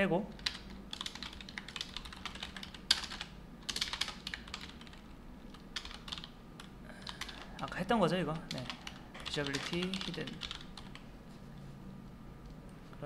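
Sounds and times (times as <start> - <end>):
computer keyboard typing: 0.3 - 11.1.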